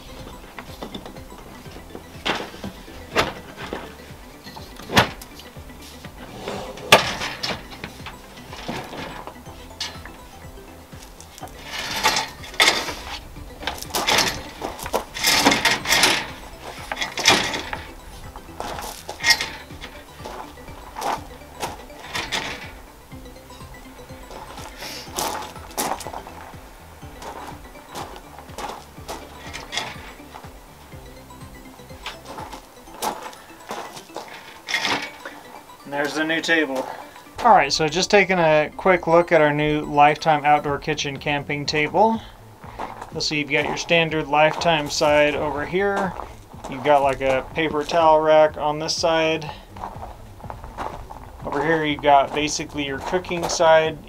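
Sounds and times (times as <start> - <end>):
background music: 0.0 - 54.0
folding table clicks and rattles: 0.2 - 5.5, 6.4 - 10.1, 11.3 - 17.9, 18.6 - 22.8, 28.7 - 30.1, 33.7 - 35.3.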